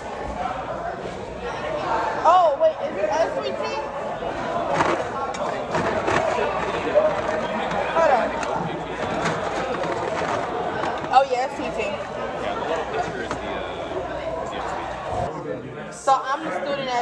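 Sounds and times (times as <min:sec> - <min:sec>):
chatter of many voices: 0:00.0 - 0:17.0.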